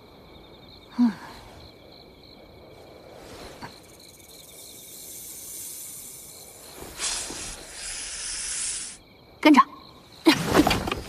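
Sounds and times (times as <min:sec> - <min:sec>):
soft high hiss: 0:00.0 - 0:10.2
crickets chirping: 0:00.0 - 0:11.0.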